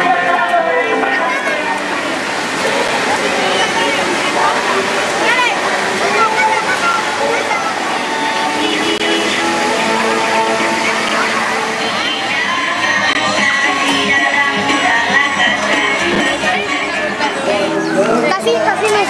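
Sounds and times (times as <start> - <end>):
children shouting and squealing: 0.0 - 2.2, 3.1 - 9.0
background music: 0.0 - 19.0
water splashing: 0.0 - 19.0.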